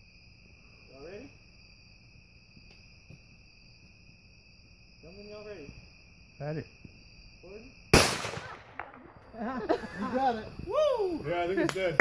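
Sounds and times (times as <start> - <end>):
crickets and night insects chirping: 0.0 - 12.0.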